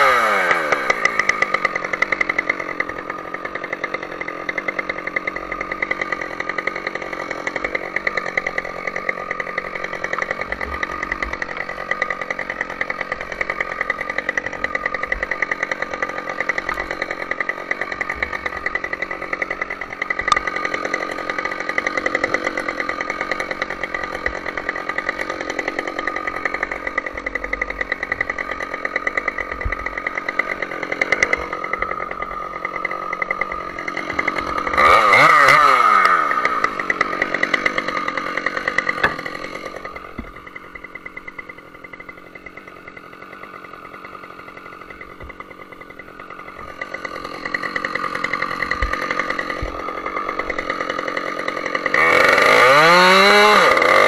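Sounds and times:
chainsaw cutting tree trunk: 0:00.0 - 0:54.0.

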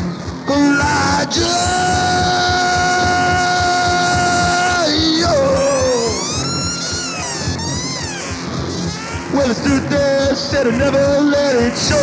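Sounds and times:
lo-fi punk rock band playing: 0:00.0 - 0:12.0
held note with sliding pitches: 0:01.7 - 0:09.8.

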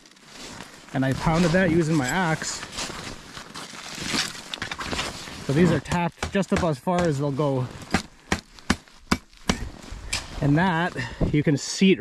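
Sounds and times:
gloves and clothing rustling: 0:00.0 - 0:11.2.

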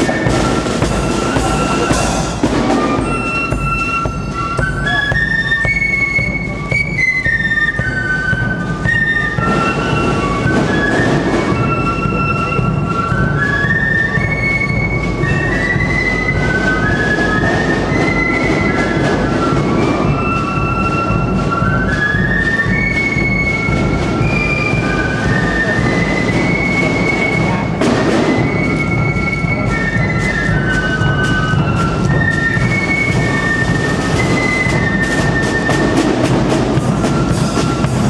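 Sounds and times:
drums beating: 0:00.0 - 0:38.0
high held flute notes: 0:00.0 - 0:38.0
military marching band playing: 0:00.0 - 0:38.0.

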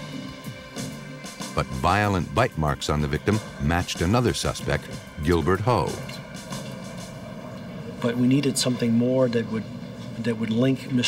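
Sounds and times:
low droning background music: 0:00.0 - 0:11.0.

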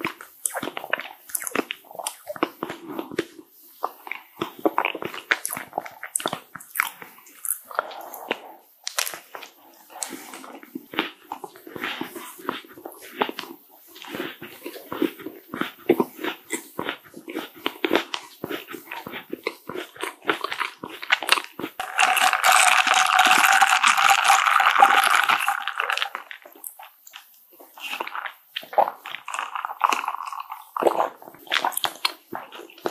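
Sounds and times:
close-miked wet chewing: 0:00.0 - 0:32.9
plastic cup rustling: 0:21.8 - 0:26.5.

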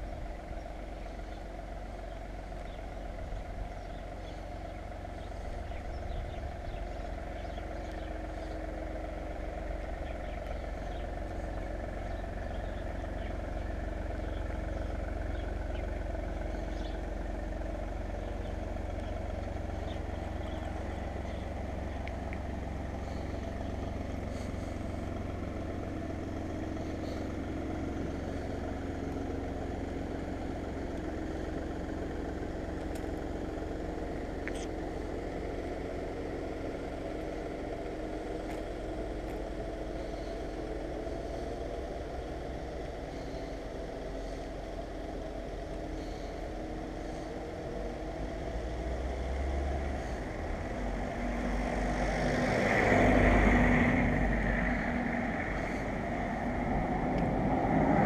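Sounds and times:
engine droning: 0:00.0 - 0:58.0.

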